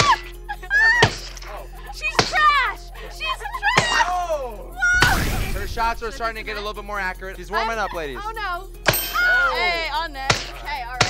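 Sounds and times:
person yelping: 0.0s - 1.2s, 1.8s - 5.2s
background music: 0.0s - 11.0s
water balloons bursting: 4.9s - 6.1s.

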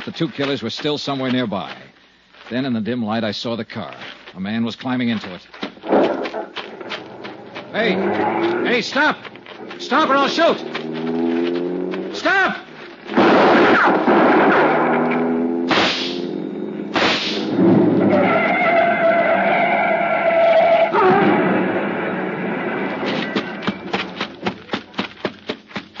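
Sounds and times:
running footsteps: 0.0s - 2.8s, 3.7s - 13.2s, 23.0s - 26.0s
car speeding away: 7.5s - 8.9s, 9.5s - 12.2s, 14.4s - 18.6s
gunshots: 13.1s - 17.7s
car crashing: 13.1s - 24.8s.

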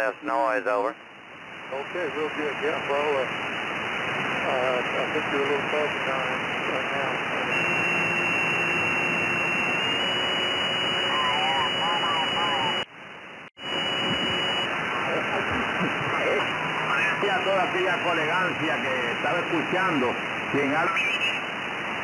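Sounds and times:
radio band noise hiss: 0.0s - 12.9s, 13.6s - 22.0s
faint garbled radio voices: 4.4s - 8.5s, 10.9s - 12.9s, 13.8s - 21.6s
thin high whistle: 7.5s - 12.8s.

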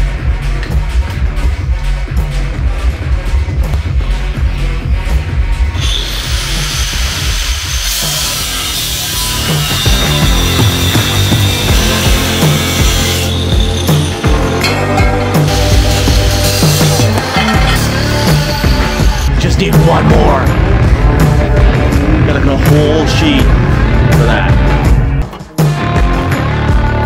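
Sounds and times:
music with bass beat: 0.0s - 27.0s
angle grinder on metal plate: 5.8s - 19.3s.

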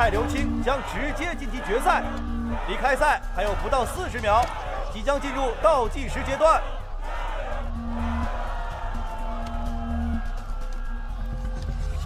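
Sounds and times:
held notes over deep bass: 0.0s - 10.2s.

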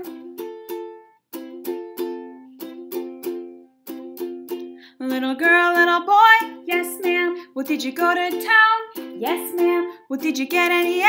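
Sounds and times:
person singing: 0.0s - 0.8s, 4.5s - 11.0s.

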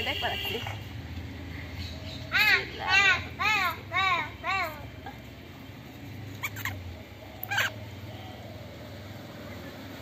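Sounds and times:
chicken squawking: 6.4s - 7.8s.

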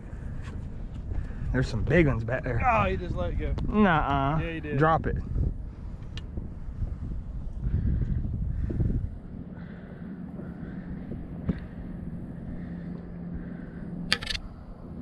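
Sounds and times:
faint steady hum: 0.0s - 15.0s
wind rumbling on microphone: 0.0s - 15.0s
sharp click: 14.1s - 14.5s.

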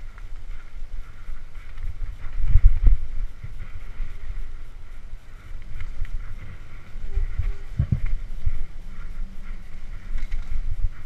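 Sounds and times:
bike rolling over rough trail: 0.0s - 11.0s
wind rumbling on microphone: 0.0s - 11.0s.

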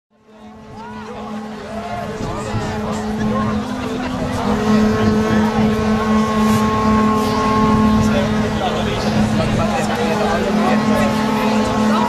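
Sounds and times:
crowd shouting and cheering: 0.2s - 12.0s
bagpipes droning: 0.3s - 12.0s.

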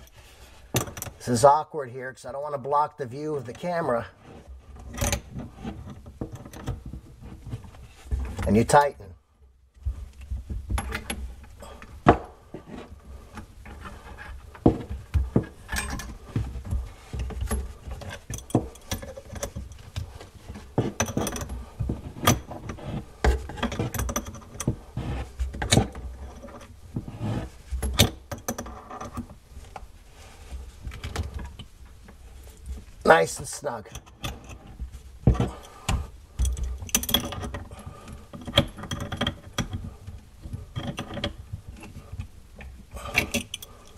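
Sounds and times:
metal wrenches clinking on nut: 15.6s - 16.2s, 20.8s - 21.5s, 36.4s - 37.6s, 43.0s - 43.9s.

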